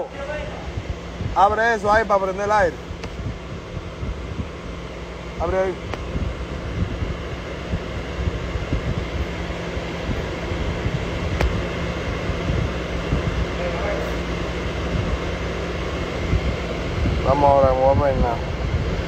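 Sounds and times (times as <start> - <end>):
air-conditioning fan hiss: 0.0 - 19.0
car engine rumble: 0.0 - 19.0
faint steady hum: 0.0 - 19.0.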